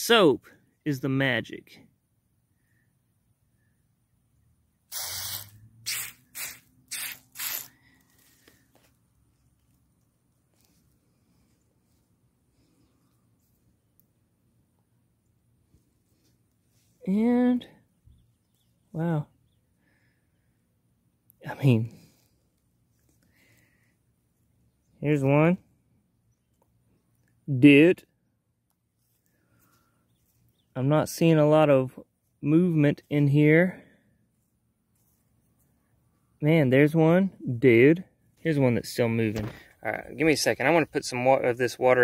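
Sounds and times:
garden sprayer squirting water: 0:04.9 - 0:07.8.

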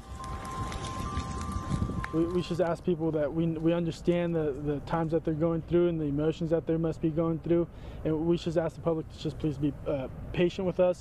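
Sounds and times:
steady high tones: 0:00.0 - 0:02.9
wind buffeting microphone: 0:00.0 - 0:03.1
fire crackles: 0:00.0 - 0:05.2
wildfire rumbling: 0:00.0 - 0:06.2.

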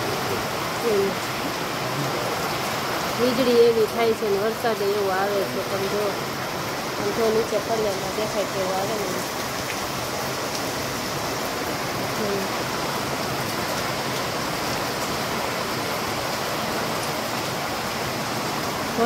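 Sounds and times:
rain on concrete: 0:00.0 - 0:19.0.

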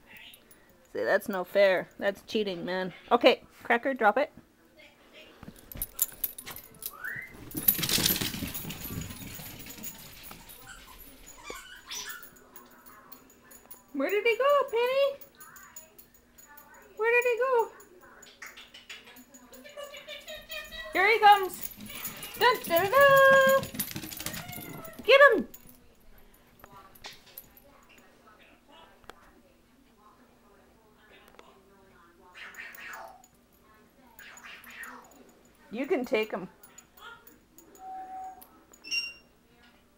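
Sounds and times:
rustling and scuffling: 0:05.4 - 0:11.8
dogs playing tug-of-war: 0:05.6 - 0:13.8, 0:19.1 - 0:25.8
dog whimpers: 0:10.7 - 0:12.4, 0:24.2 - 0:25.1, 0:37.7 - 0:38.5
dog whining: 0:10.7 - 0:12.4, 0:24.2 - 0:25.1, 0:37.7 - 0:38.5.

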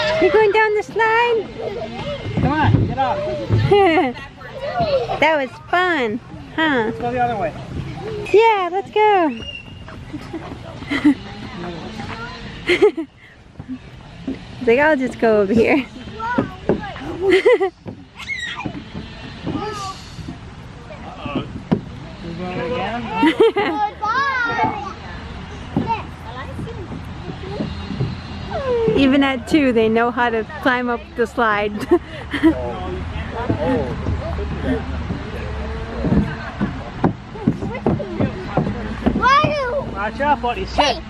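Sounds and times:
adult voices: 0:00.0 - 0:17.6, 0:18.7 - 0:41.0
person laughing: 0:23.2 - 0:23.8.

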